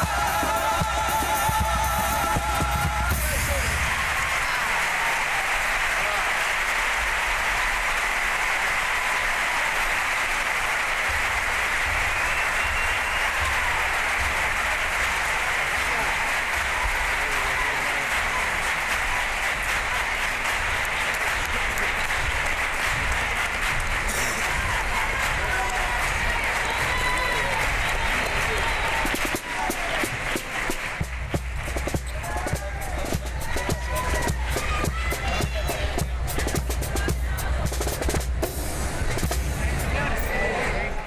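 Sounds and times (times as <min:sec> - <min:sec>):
audience applauding: 0:00.0 - 0:41.0.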